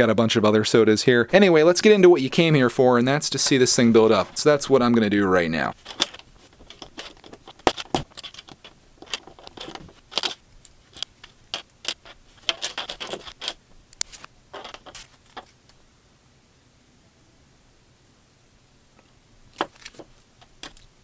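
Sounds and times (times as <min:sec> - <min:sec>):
plastic toy bricks clicking: 0:05.9 - 0:13.6.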